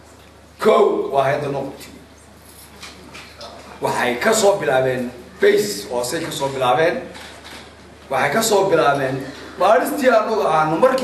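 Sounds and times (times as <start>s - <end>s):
man speaking: 0.6s - 2.1s, 3.4s - 7.1s, 8.1s - 11.0s.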